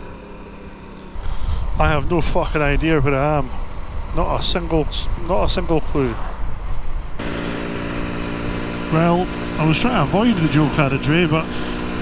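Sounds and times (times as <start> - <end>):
motorcycle engine running: 0.0 - 12.0
wind rumble: 1.2 - 7.2.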